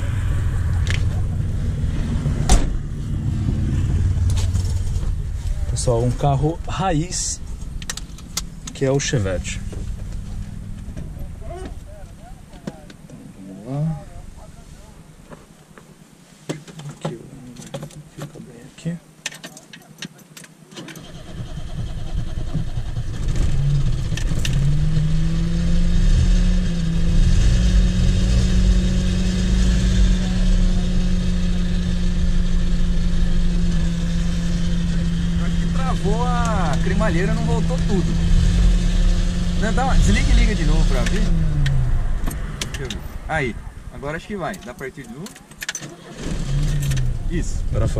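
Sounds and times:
car engine cranking and starting: 0.0s - 15.2s, 20.7s - 47.9s
car engine idling: 0.0s - 16.0s, 28.8s - 47.9s.

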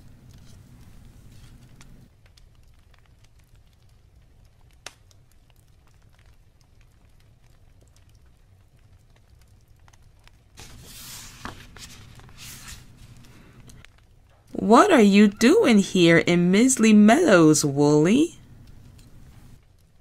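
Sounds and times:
low room hum: 0.0s - 2.1s, 10.6s - 20.0s
book page turning: 10.6s - 13.8s.

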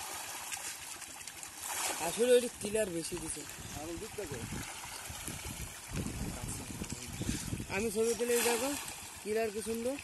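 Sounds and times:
fish splashing in a pond: 0.0s - 10.0s.

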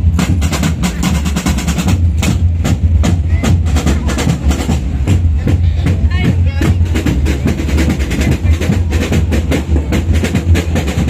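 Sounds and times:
heavy bass drum: 0.0s - 11.0s.

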